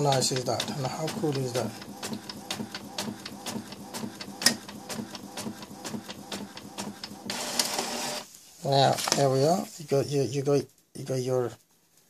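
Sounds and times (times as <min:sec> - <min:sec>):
inkjet printer clicking: 0:00.0 - 0:08.2.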